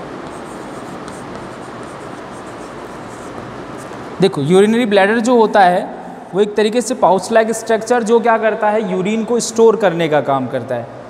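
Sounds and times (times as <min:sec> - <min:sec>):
chalk scratching on chalkboard: 0:00.2 - 0:04.0.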